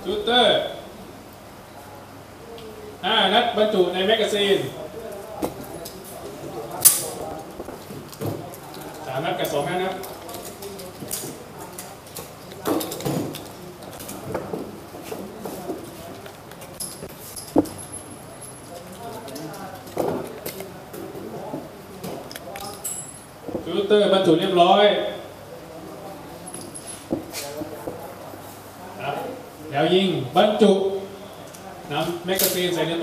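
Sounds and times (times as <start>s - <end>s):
voices talking quietly: 0.0s - 33.0s.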